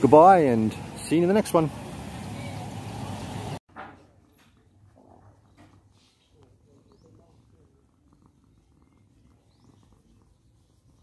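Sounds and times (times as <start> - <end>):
cat purring: 4.2 - 11.0.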